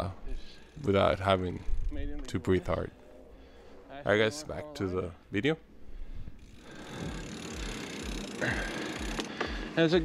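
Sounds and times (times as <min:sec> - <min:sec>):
bike tyres rolling on dirt trail: 0:06.3 - 0:10.0.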